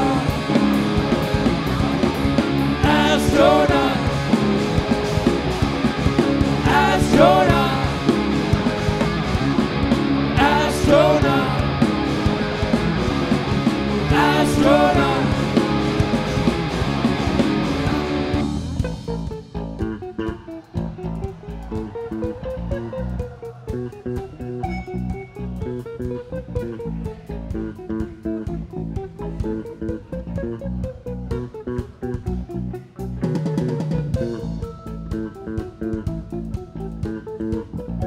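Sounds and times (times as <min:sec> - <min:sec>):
bass guitar: 0:00.0 - 0:38.0
steady drums: 0:00.0 - 0:38.0
wavering electric guitar melody: 0:00.0 - 0:38.0.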